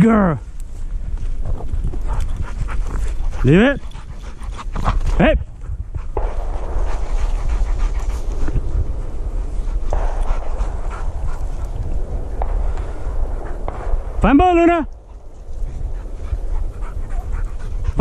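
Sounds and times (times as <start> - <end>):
steady low rumble: 0.0 - 18.0
dog panting hard: 1.8 - 13.7, 14.9 - 18.0.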